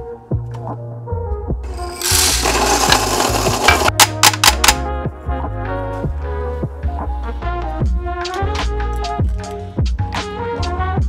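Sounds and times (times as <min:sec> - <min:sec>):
background music with bass line: 0:00.0 - 0:11.0
coffee grinder running: 0:01.7 - 0:04.8.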